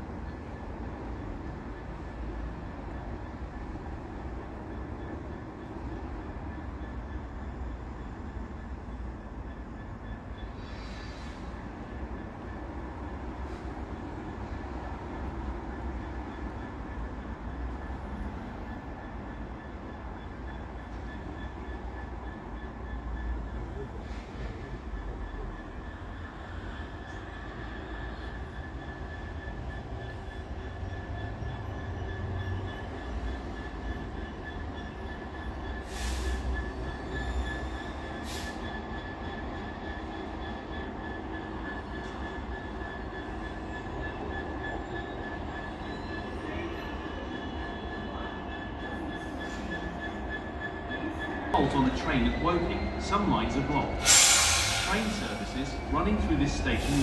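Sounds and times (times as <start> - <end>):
diesel locomotive engine rumbling: 0.0 - 57.0
short hisses: 54.0 - 55.6.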